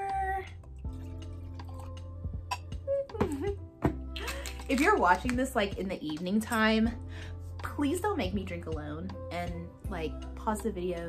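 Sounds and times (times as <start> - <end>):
background music: 0.0 - 11.0
wine poured into a glass: 0.7 - 2.6.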